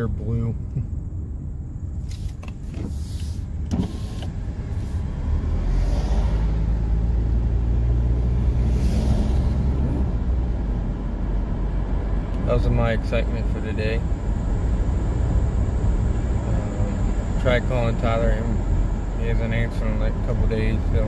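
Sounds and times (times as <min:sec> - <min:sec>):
car engine and tyre drone: 0:00.0 - 0:21.0.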